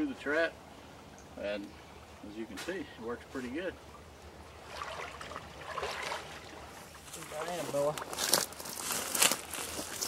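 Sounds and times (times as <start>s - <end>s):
water sloshing around waders: 3.8s - 10.0s.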